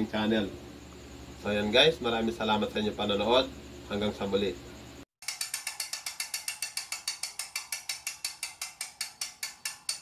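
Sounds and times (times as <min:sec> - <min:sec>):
rapid ratchet clicking: 0:05.2 - 0:10.0.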